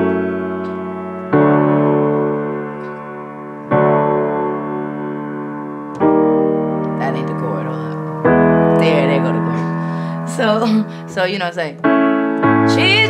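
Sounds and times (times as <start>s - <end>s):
piano chords played slowly: 0.0s - 13.0s.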